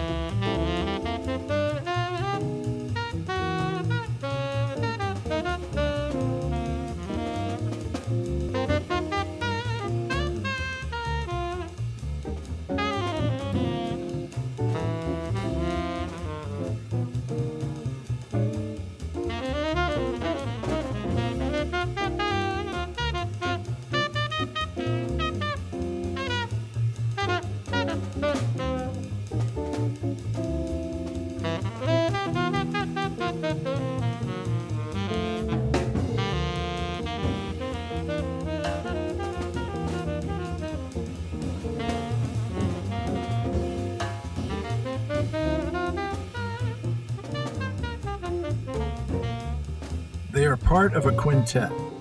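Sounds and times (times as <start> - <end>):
electric guitar: 0.0 - 50.3, 51.7 - 52.0
double bass: 0.0 - 52.0
drum kit: 0.0 - 52.0
piano: 0.0 - 52.0
tenor saxophone melody: 0.0 - 52.0.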